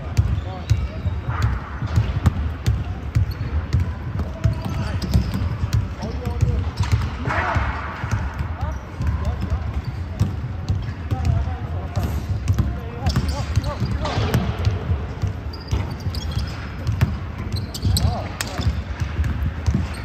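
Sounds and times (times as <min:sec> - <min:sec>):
basketball bouncing on wood floor: 0:00.0 - 0:07.2, 0:08.0 - 0:20.0
sneakers squeaking on court: 0:00.0 - 0:07.2, 0:07.8 - 0:20.0.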